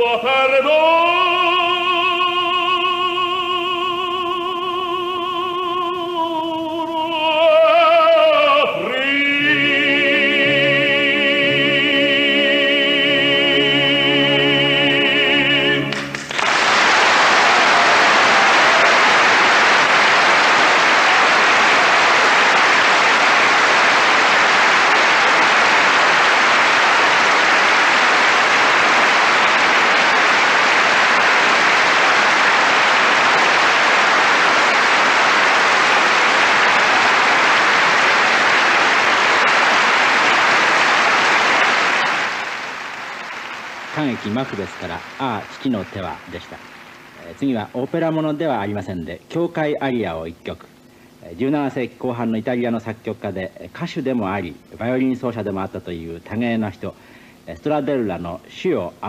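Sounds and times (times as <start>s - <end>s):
tenor singing with vibrato: 0.0s - 16.2s
audience applauding: 15.8s - 48.0s.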